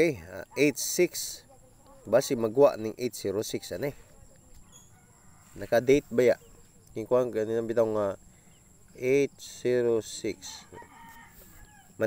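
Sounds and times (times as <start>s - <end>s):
faint animal call: 10.2s - 12.0s.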